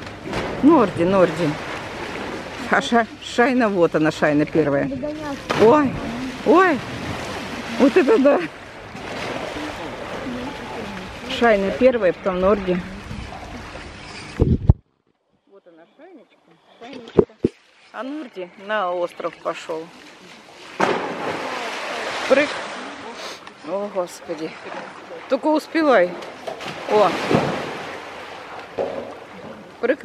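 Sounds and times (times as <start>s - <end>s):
water splashing and sloshing: 0.0s - 15.3s, 16.7s - 30.0s
loud splash into water: 5.3s - 8.4s, 9.0s - 11.0s, 20.6s - 23.1s, 26.4s - 29.3s
wind noise on microphone: 12.9s - 14.9s.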